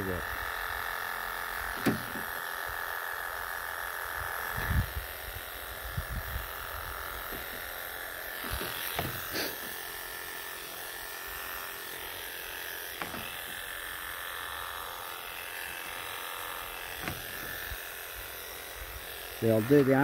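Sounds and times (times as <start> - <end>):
electric clippers buzzing: 0.0 - 20.0
short dull bumps: 8.4 - 9.7, 16.9 - 17.7.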